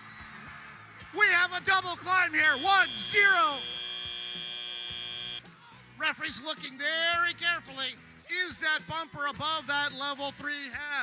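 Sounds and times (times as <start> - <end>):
buzzy electronic buzzer tone: 2.0 - 5.5.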